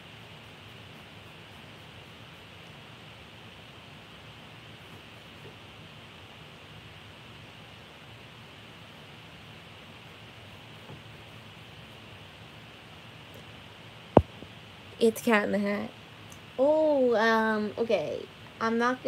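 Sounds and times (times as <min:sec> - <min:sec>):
faint low hum: 0:00.0 - 0:19.0
steady hiss: 0:00.0 - 0:19.0.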